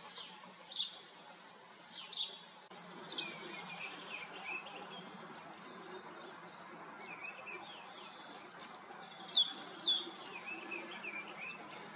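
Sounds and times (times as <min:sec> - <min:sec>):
small bird singing: 0:00.0 - 0:11.9.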